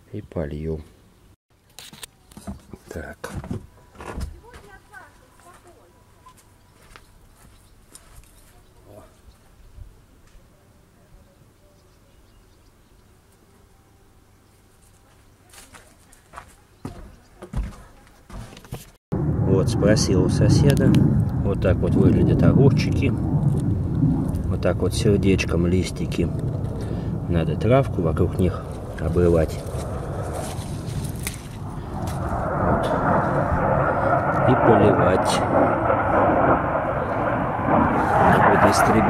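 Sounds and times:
footsteps: 1.8s - 8.6s, 14.8s - 19.0s, 28.7s - 33.4s
fighter jet flying overhead: 19.2s - 39.0s.

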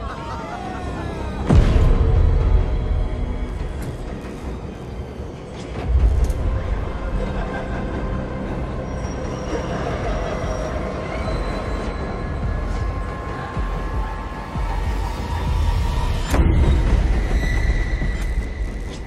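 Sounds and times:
tense music: 0.0s - 19.0s.

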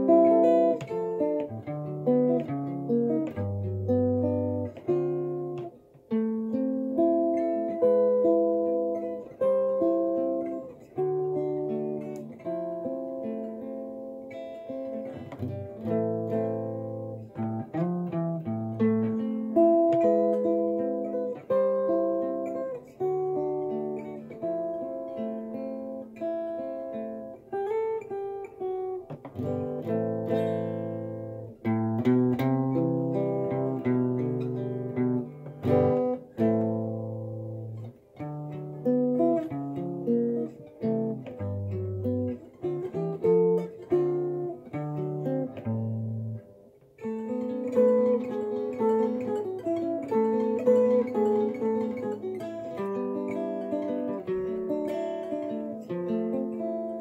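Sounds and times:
fingerpicked guitar: 0.0s - 57.0s.

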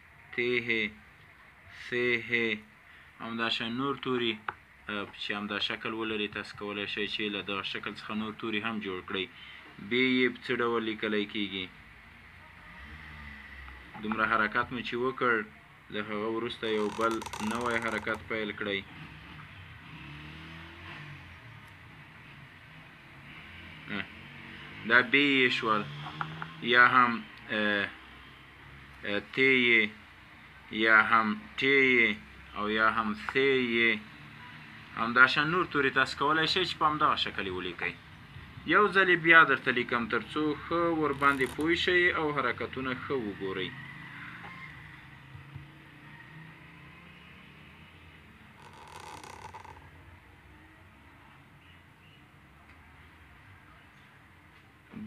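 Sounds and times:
pen scratching on paper: 41.2s - 41.6s
pen scratching across paper: 41.2s - 41.7s, 48.6s - 49.8s.

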